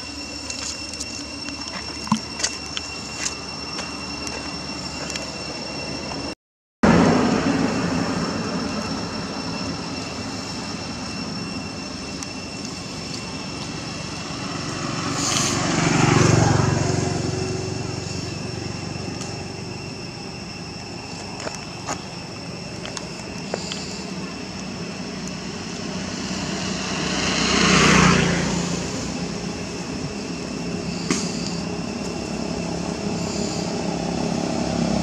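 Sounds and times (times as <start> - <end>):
steady high-pitched drone: 0.0 - 35.0
motor vehicle passing: 13.8 - 19.6, 25.5 - 35.0.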